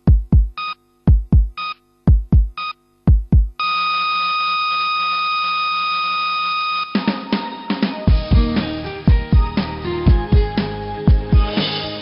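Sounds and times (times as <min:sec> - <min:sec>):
continuous electronic beep: 0:00.6 - 0:00.8, 0:01.5 - 0:01.8, 0:02.5 - 0:02.8, 0:03.6 - 0:07.4.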